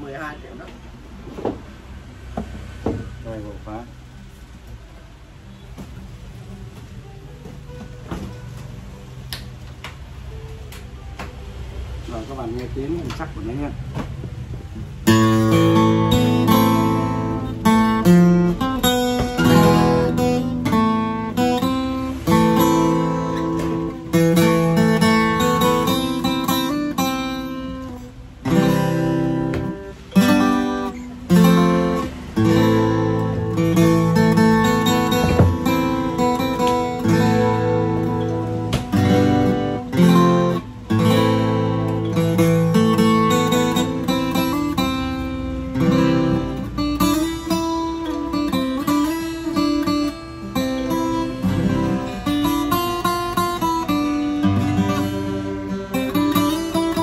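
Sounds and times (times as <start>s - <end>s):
acoustic guitar playing: 0.0s - 57.0s.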